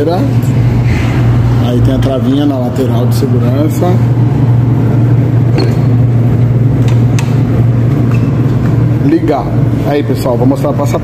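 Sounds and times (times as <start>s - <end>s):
low machine hum: 0.0s - 11.0s.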